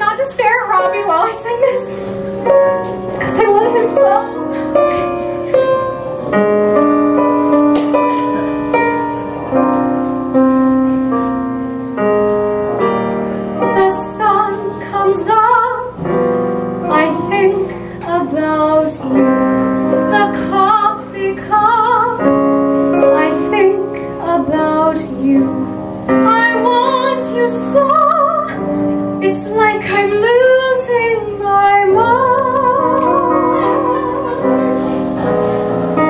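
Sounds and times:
piano accompaniment: 0.0 - 36.0
soprano singing: 13.6 - 16.0, 16.8 - 35.1.

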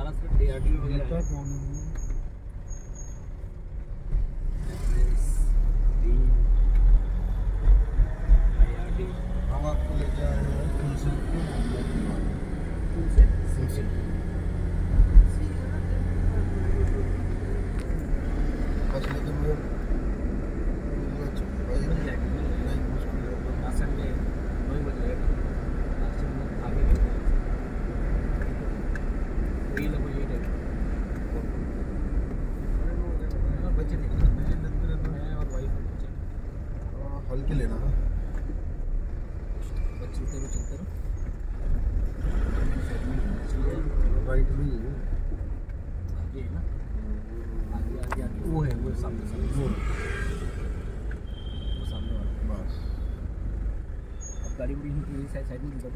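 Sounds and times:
car cabin road rumble: 0.0 - 55.9.

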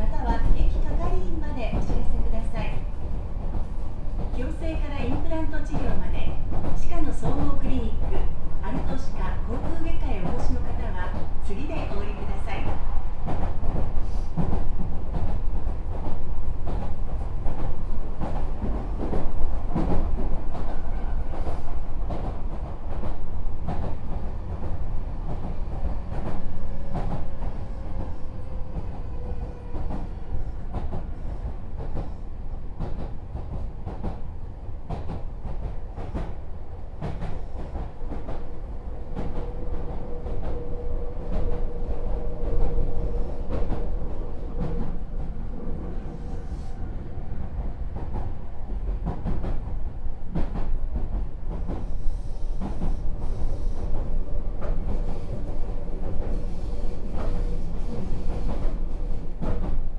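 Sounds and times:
train wheels rumbling on rails: 0.0 - 59.9
clacks over rail joints: 34.8 - 36.4, 37.0 - 38.5, 48.0 - 51.9, 57.2 - 59.9.

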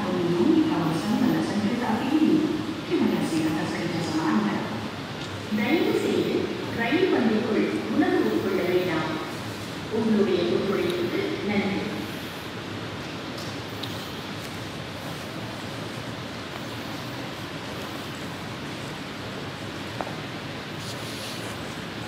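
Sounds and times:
person speaking: 0.0 - 12.3
metro platform rushing noise: 0.0 - 22.0.

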